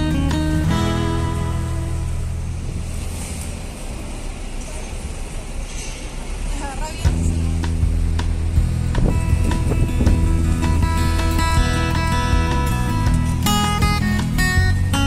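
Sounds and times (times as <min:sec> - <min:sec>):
background music: 0:00.0 - 0:03.1, 0:07.1 - 0:15.0
city traffic noise: 0:00.0 - 0:15.0.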